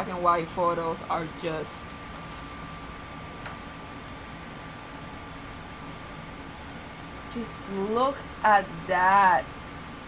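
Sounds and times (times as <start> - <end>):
air conditioner running: 0.0 - 10.0.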